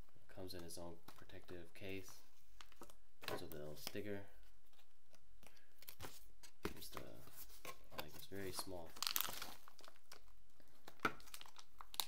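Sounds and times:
plastic bag crinkling: 8.5s - 12.0s.

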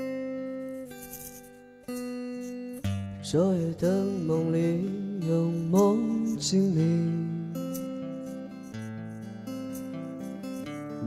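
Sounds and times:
acoustic guitar strummed chords: 0.0s - 11.0s
man singing: 3.2s - 7.8s.

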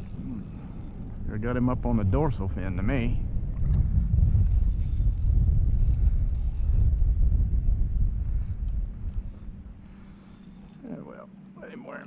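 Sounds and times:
wind buffeting microphone: 0.0s - 10.2s.

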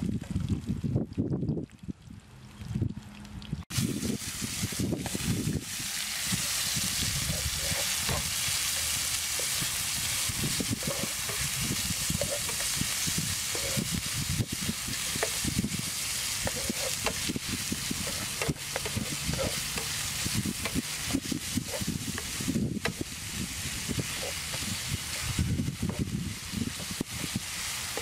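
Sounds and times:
meat sizzling in a frying pan: 3.7s - 28.0s
spatula scraping a pan: 5.0s - 28.0s.

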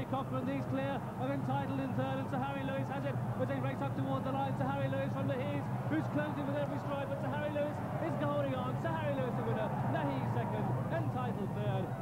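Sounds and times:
man commentating: 0.0s - 12.0s.

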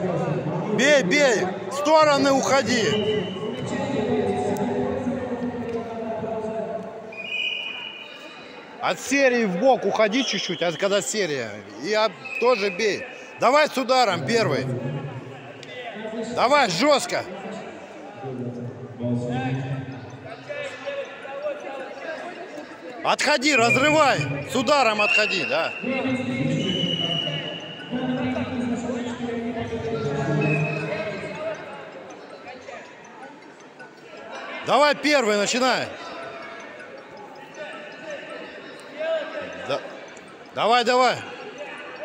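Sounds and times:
murmur of distant voices echoing: 0.0s - 42.0s
people talking and calling out: 0.0s - 42.0s.

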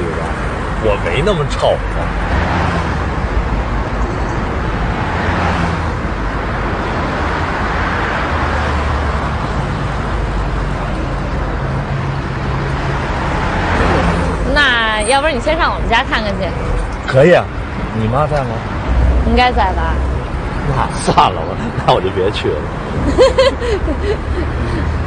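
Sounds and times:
road traffic engine hum: 0.0s - 25.0s.

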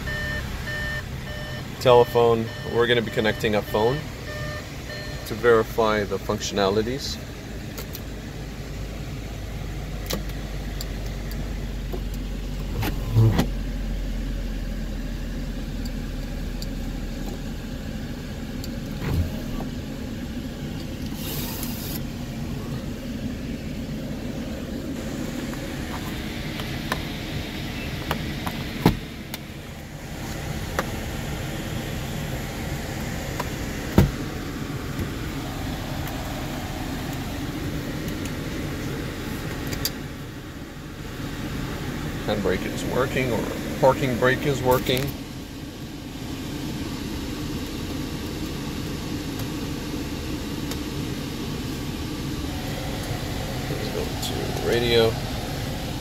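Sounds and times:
car engine idling: 0.0s - 56.0s
climate fan running: 0.0s - 56.0s
sunroof motor whirring: 44.8s - 56.0s.

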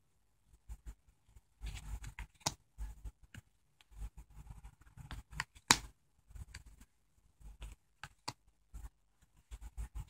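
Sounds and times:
cards sliding and slapping: 1.6s - 2.6s, 5.0s - 6.7s.

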